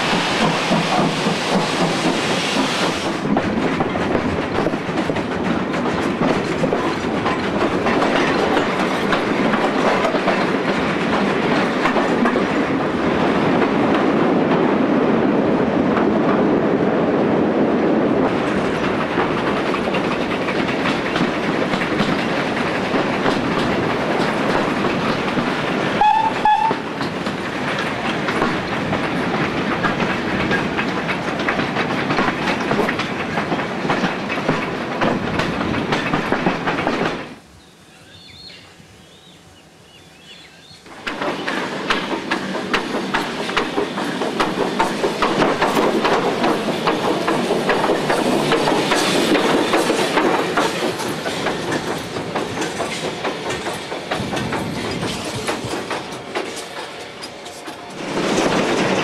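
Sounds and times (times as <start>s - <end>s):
train rumble: 0.0s - 59.0s
steam locomotive whistle toots: 26.0s - 26.8s
wheel clicks over rail joints: 40.9s - 59.0s.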